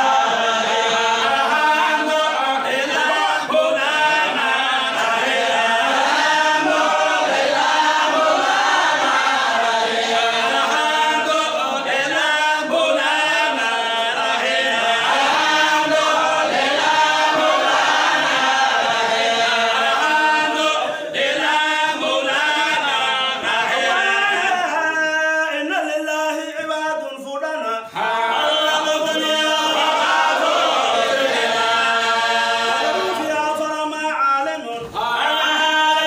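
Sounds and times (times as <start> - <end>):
group of voices chanting: 0.0 - 24.7, 27.9 - 33.6, 34.8 - 36.0.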